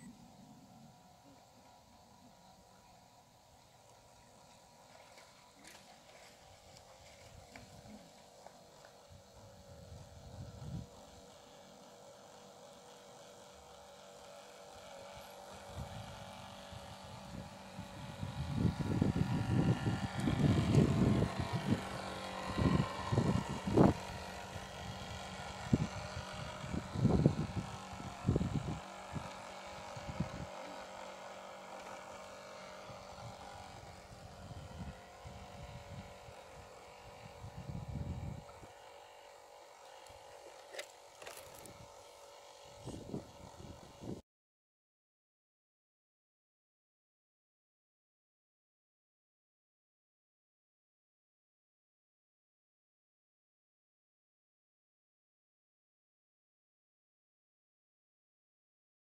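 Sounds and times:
model boat motor whine: 0.0 - 44.2.

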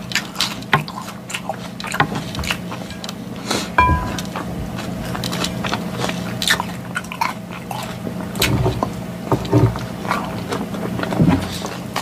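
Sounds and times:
fork clinking on glass bowl: 3.8 - 4.4.

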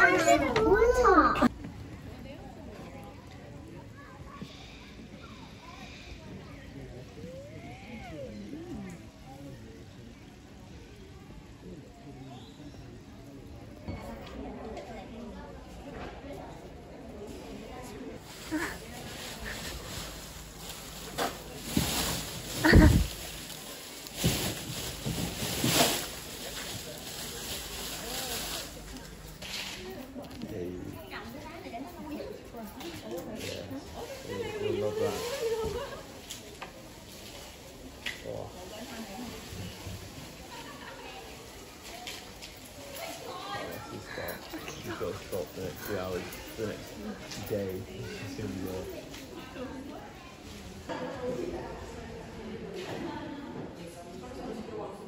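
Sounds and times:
indistinct voices: 0.0 - 1.5, 4.1 - 10.5
distant people talking: 0.0 - 55.0.

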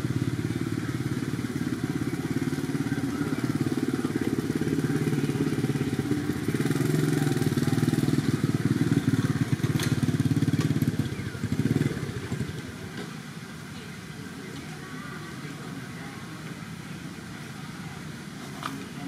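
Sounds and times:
small engine droning: 0.0 - 19.0.

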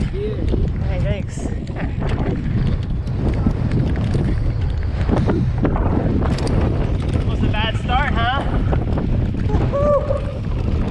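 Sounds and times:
bike knocks and rattles: 0.0 - 9.7
tyre rumble: 0.0 - 10.9
wind rushing over microphone: 0.0 - 10.9.

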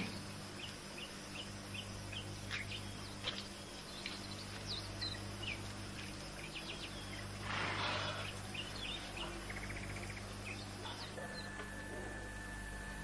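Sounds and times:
rapid bird trill: 0.0 - 11.9
birds chirping: 0.0 - 13.0
steady low hum: 0.0 - 13.0.

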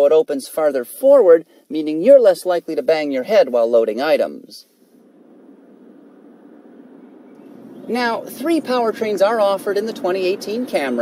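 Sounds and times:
car road noise approaching: 4.8 - 11.0.

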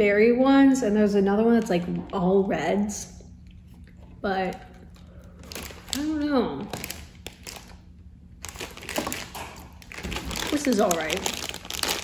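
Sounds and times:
plastic bag crinkling: 4.4 - 12.0.

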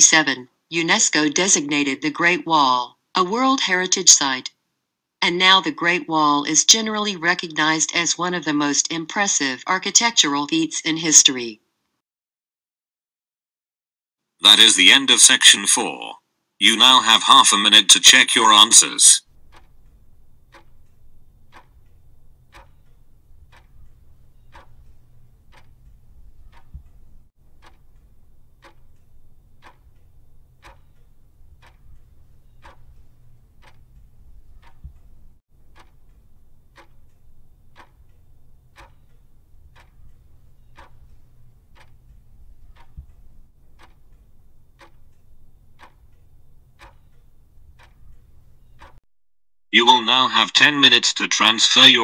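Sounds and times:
clock ticking: 0.0 - 4.5, 5.2 - 11.4, 14.4 - 16.0, 16.6 - 49.0
low steady hum: 16.6 - 48.9.

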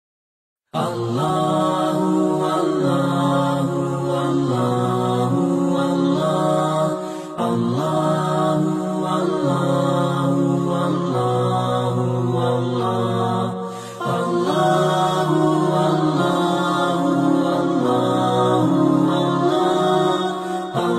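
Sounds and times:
person chanting in held notes: 0.8 - 20.9.

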